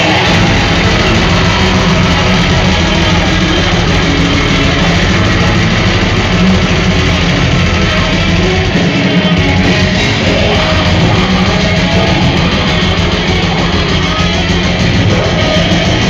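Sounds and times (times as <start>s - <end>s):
distorted electric guitars: 0.0s - 16.0s
drums: 0.0s - 16.0s.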